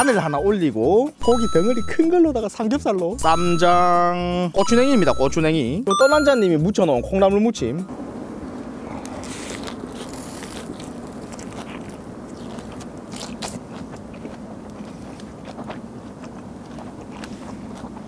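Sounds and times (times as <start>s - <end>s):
low background hum: 3.1s - 18.0s
person chewing crisp food: 8.8s - 18.0s.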